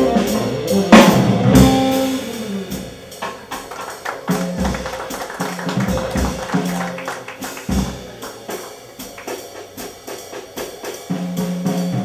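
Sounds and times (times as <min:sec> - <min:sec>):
drum kit cymbal strokes: 0:00.0 - 0:12.0
jazz ensemble hit: 0:00.0 - 0:12.0.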